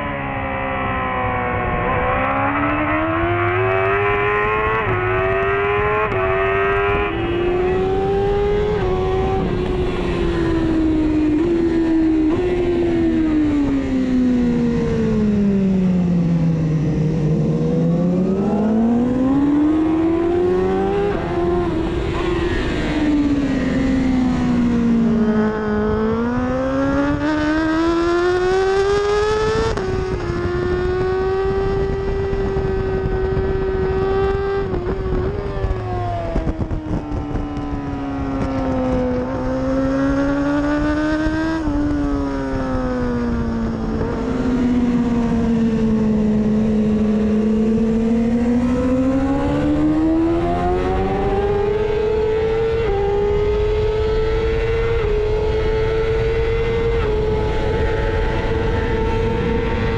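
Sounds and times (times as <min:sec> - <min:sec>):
motorcycle engine revving: 0:00.0 - 0:59.9.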